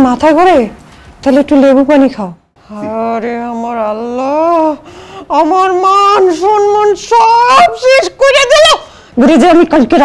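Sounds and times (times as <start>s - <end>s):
person wailing high-pitched: 2.7s - 8.8s.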